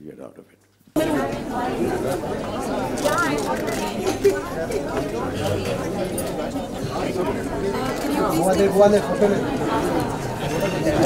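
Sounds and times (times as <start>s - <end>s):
crowd chatter: 0.9s - 11.0s.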